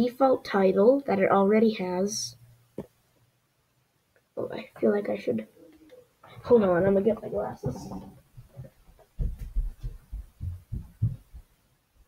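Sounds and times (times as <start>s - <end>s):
footsteps with dull low thumps: 6.2s - 12.0s.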